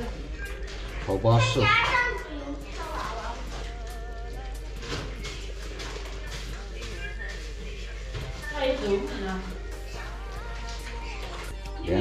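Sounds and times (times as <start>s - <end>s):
background music with wavering melody: 0.0s - 12.0s.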